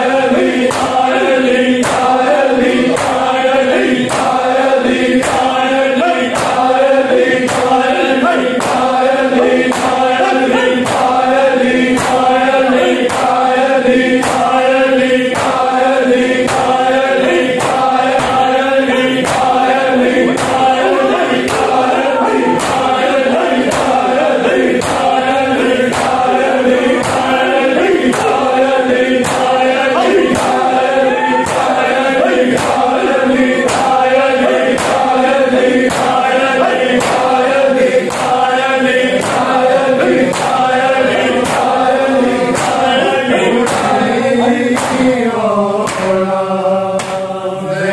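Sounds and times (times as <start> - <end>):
men chanting lament in unison: 0.0 - 47.9.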